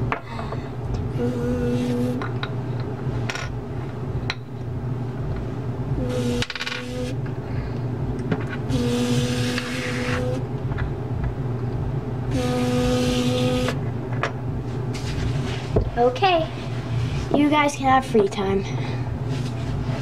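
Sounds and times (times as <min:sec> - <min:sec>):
low background hum: 0:00.0 - 0:20.0
child making buzzing sounds: 0:00.3 - 0:02.3, 0:06.0 - 0:07.2, 0:08.7 - 0:10.4, 0:12.3 - 0:13.8.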